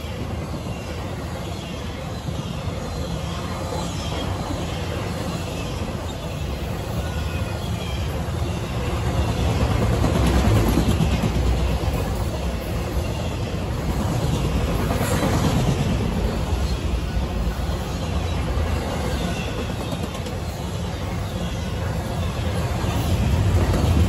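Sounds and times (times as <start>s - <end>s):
train wheels rolling on rails: 0.0s - 24.0s.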